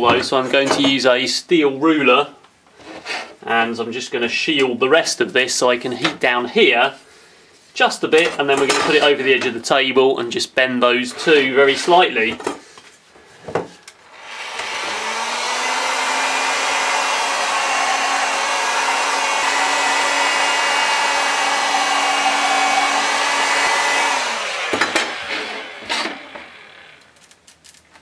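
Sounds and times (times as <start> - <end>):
hot air gun blowing: 14.1 - 26.5.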